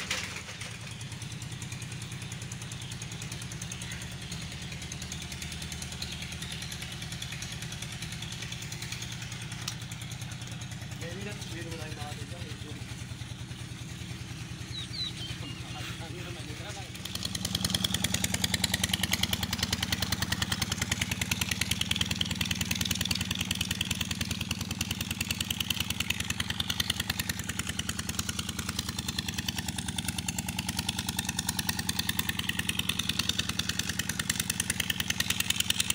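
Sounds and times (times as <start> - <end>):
diesel engine running: 0.0 - 35.9.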